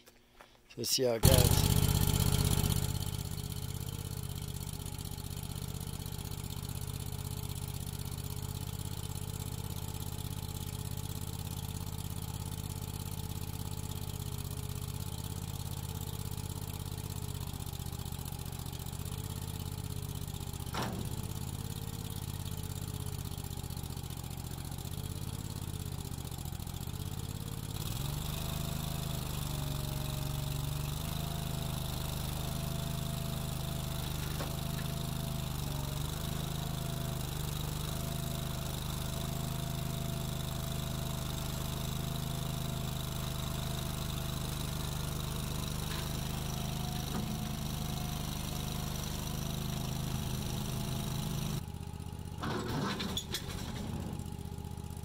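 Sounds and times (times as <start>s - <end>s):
skid steer engine running: 1.2s - 55.0s.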